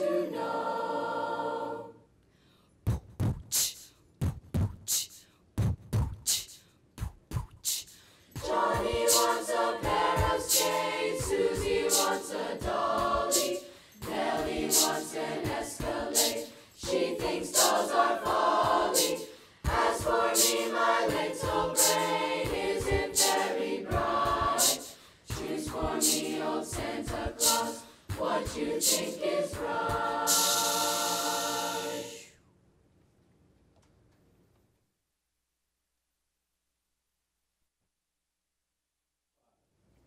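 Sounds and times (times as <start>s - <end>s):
children's choir singing a cappella: 0.0s - 2.0s, 8.4s - 32.4s.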